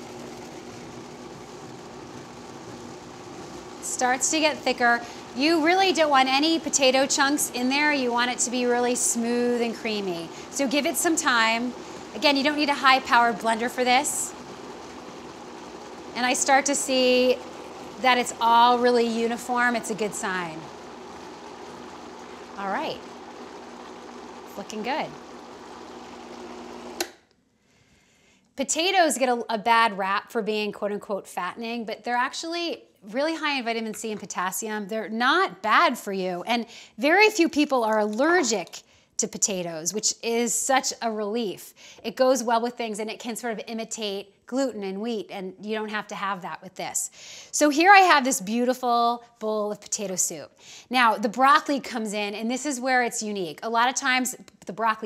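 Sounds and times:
blender motor humming: 0:00.0 - 0:27.2
blender switch click: 0:27.0 - 0:27.2.

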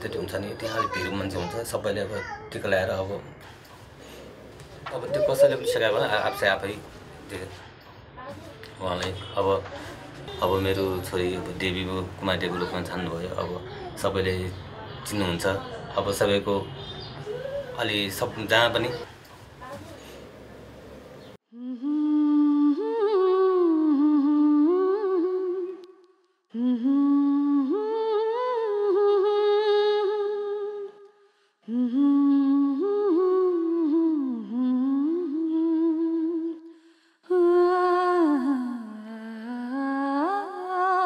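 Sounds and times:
person humming a slow melody: 0:21.4 - 0:25.8, 0:26.5 - 0:31.0, 0:31.7 - 0:36.7.

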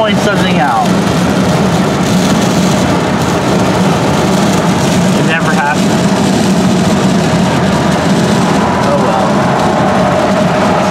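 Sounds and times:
wind and road noise inside car: 0:00.0 - 0:10.9.

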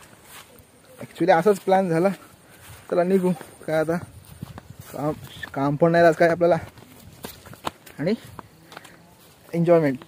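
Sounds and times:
footsteps on grassy trail: 0:00.0 - 0:10.0
man talking: 0:00.8 - 0:04.2, 0:04.8 - 0:06.8, 0:07.9 - 0:08.4, 0:09.0 - 0:10.0.

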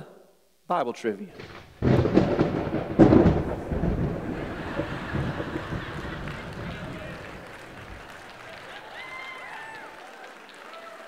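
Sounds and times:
congregation applauding: 0:03.8 - 0:11.0
voices: 0:04.3 - 0:10.2.

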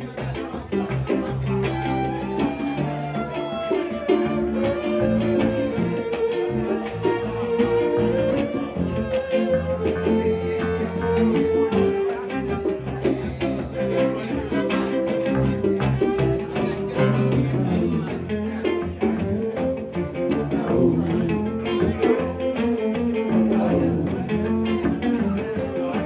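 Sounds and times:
strummed acoustic guitar: 0:00.0 - 0:26.0
fiddle bowing long notes: 0:01.7 - 0:12.9.

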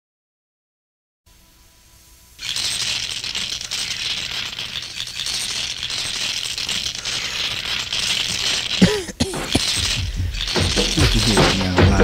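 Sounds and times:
faint tape hiss: 0:01.3 - 0:12.0
loud dense rattling noise: 0:02.4 - 0:12.0.

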